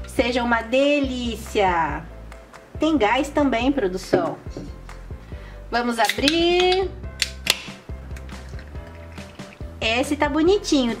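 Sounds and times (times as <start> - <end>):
background music: 0.0 - 11.0
soda pouring and fizzing: 8.2 - 9.7.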